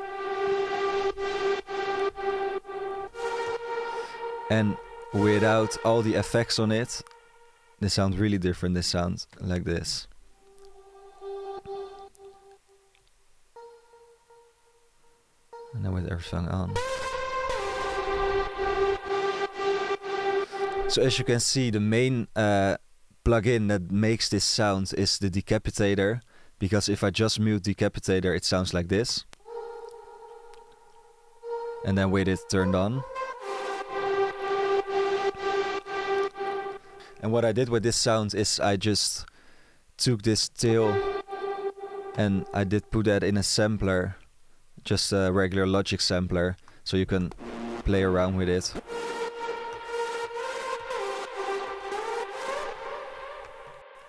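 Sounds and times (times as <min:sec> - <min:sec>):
thin synth tone repeating: 0:00.0 - 0:07.8, 0:13.6 - 0:21.5, 0:29.4 - 0:37.6, 0:40.6 - 0:43.1, 0:47.4 - 0:54.0.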